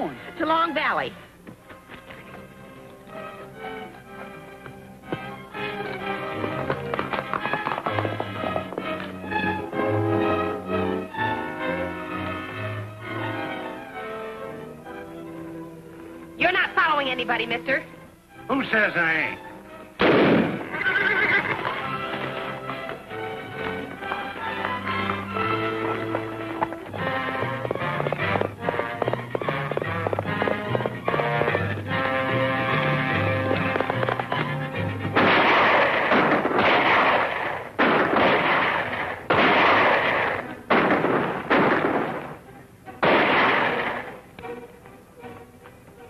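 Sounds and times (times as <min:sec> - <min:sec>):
dramatic orchestral music: 0:02.0 - 0:46.0
loud gunshots: 0:20.0 - 0:20.7, 0:35.1 - 0:42.4, 0:43.0 - 0:44.2.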